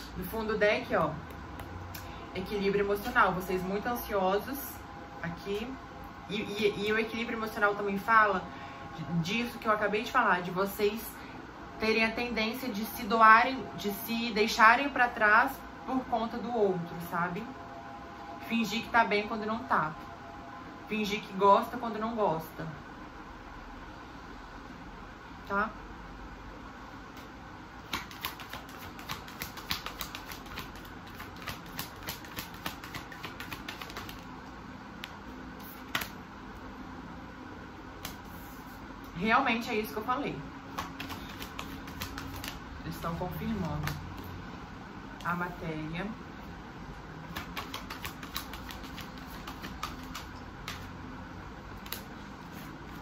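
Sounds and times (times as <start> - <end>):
cards being shuffled: 27.9 - 34.3, 35.6 - 36.2, 40.7 - 42.7, 47.3 - 50.9, 51.8 - 53.0.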